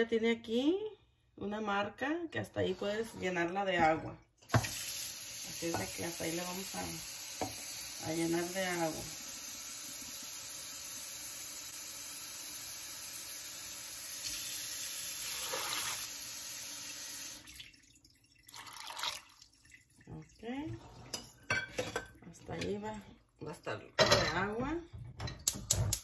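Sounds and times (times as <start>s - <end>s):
water running into a metal pot: 4.4s - 24.5s.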